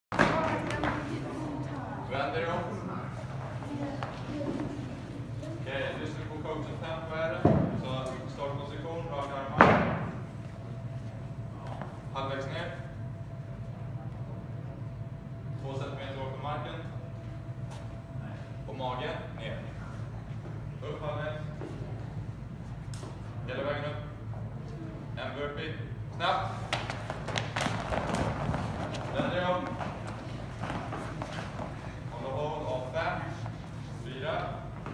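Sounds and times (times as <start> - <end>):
low room hum: 0.1 - 34.9
thud echoing: 7.4 - 7.9, 9.5 - 10.2
thuds of bodies landing on rubber floor: 26.7 - 31.8.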